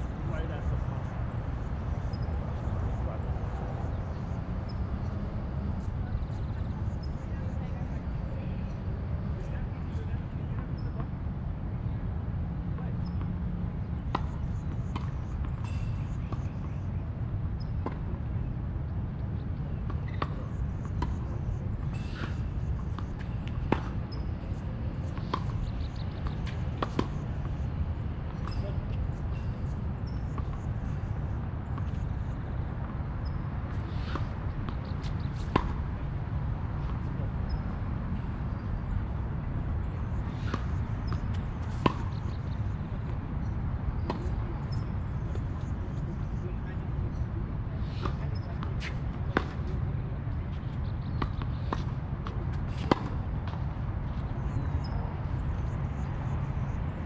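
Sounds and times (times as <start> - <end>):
tennis balls struck and bouncing: 13.0 - 16.9, 17.6 - 18.2, 19.5 - 46.1, 47.1 - 56.0.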